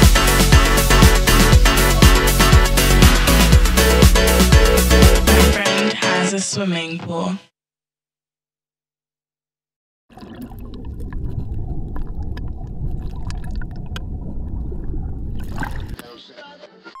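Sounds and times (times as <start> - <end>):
underwater churning water: 10.1 - 16.0
underwater clicks: 11.9 - 14.2.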